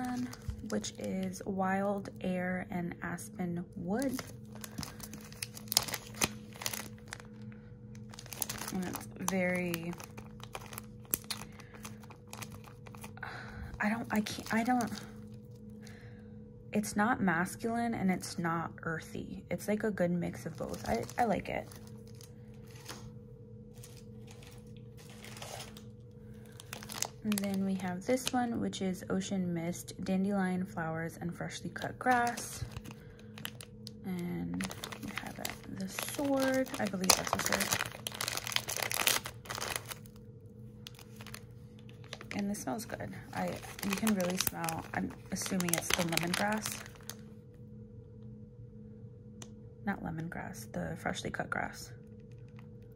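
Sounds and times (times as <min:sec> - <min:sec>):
plastic bag crinkling: 0:00.0 - 0:02.3, 0:03.7 - 0:15.8, 0:20.3 - 0:28.4, 0:31.8 - 0:40.2, 0:40.8 - 0:47.3
steady low hum: 0:00.0 - 0:52.9.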